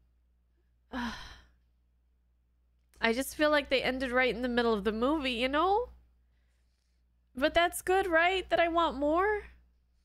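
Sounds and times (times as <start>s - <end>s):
woman sighing: 0.9s - 1.6s.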